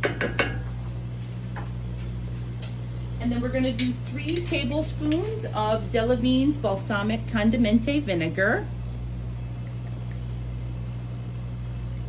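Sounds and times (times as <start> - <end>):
wooden spoon knocking on pot: 0.0 - 0.7
low hum: 0.0 - 12.0.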